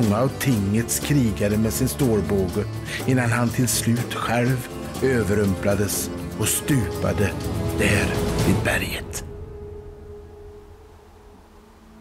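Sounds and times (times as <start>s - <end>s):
sustained music tone: 0.0s - 12.0s.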